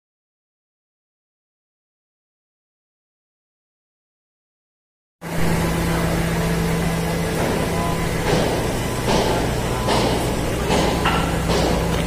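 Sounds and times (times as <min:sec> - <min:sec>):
low drone of running machinery: 0:05.2 - 0:12.0.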